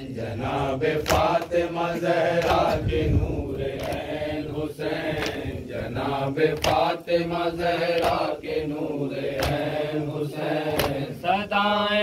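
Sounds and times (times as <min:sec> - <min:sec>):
men chanting in unison: 0:00.0 - 0:12.0
open-hand slap on chest: 0:01.0 - 0:02.8, 0:03.8 - 0:04.1, 0:05.2 - 0:05.5, 0:06.5 - 0:07.0, 0:07.9 - 0:08.3, 0:09.3 - 0:09.8, 0:10.6 - 0:11.1.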